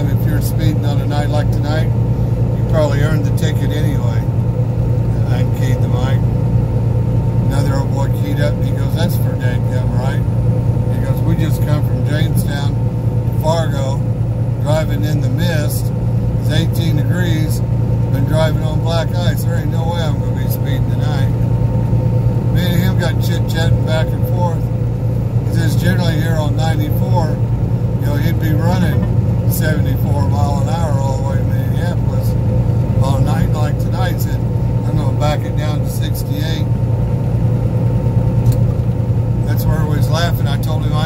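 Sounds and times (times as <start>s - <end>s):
road noise: 0.0s - 41.0s
truck engine drone: 0.0s - 41.0s
person talking: 28.0s - 32.3s.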